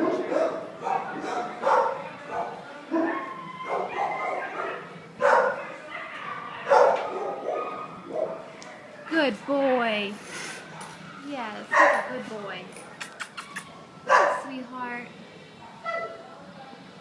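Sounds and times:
dogs barking: 0:00.0 - 0:08.5, 0:11.7 - 0:12.2, 0:13.4 - 0:14.6.

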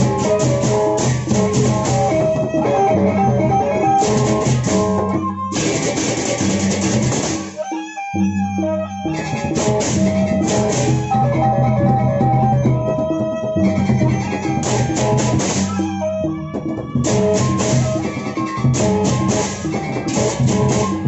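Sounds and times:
barrel drums: 0:00.0 - 0:07.6, 0:09.1 - 0:21.0
pitched melody notes: 0:00.0 - 0:21.0.

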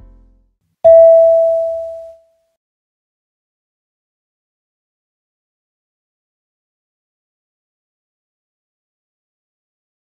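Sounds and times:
bell-like chime: 0:00.9 - 0:02.1.

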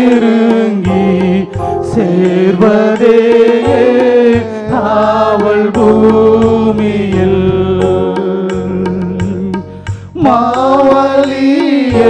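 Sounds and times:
group singing through pa: 0:00.0 - 0:09.4, 0:10.2 - 0:12.0.

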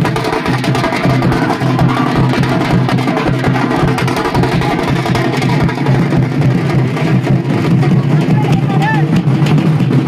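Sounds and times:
large drums beaten fast: 0:00.0 - 0:10.0.

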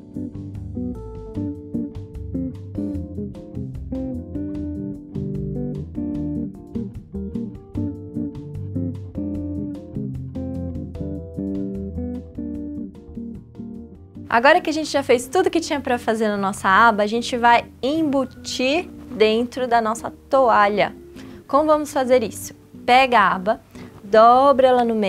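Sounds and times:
bass line: 0:00.0 - 0:14.5
plucked guitar: 0:00.0 - 0:14.6.

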